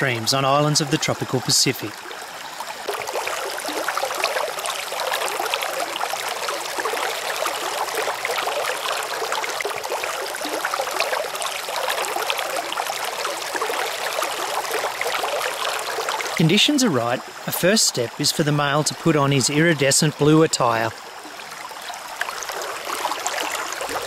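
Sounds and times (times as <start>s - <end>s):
stream water running: 0.0s - 24.0s.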